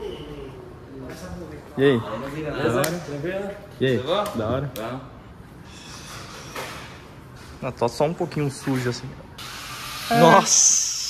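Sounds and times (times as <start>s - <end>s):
men talking: 0.4s - 5.2s, 10.1s - 10.6s.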